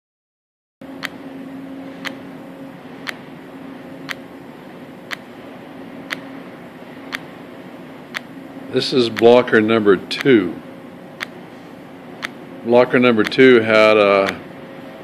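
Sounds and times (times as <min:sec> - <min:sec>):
steady low hum: 0:00.8 - 0:15.0.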